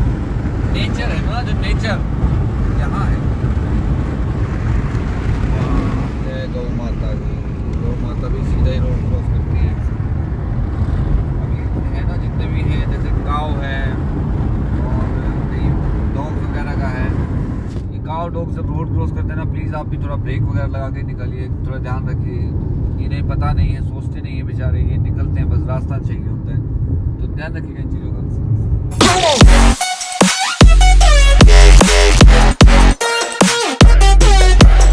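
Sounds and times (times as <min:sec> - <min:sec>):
road and wind noise in car: 0:00.0 - 0:29.0
man talking: 0:05.5 - 0:09.9, 0:11.4 - 0:14.0.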